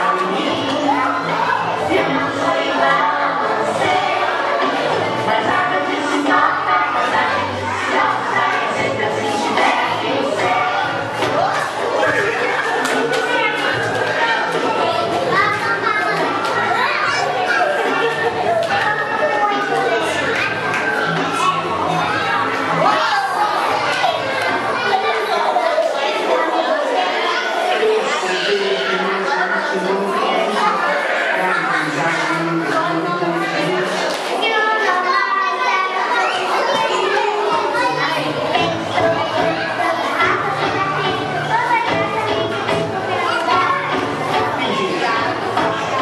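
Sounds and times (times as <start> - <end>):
chatter of adults: 0.0 - 46.0
young children's voices echoing: 0.0 - 46.0
small children calling out: 34.4 - 46.0.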